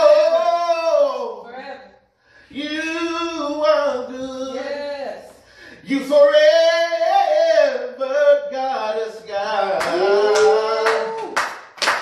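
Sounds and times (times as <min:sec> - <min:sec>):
hands clapping in time: 0:09.8 - 0:12.0.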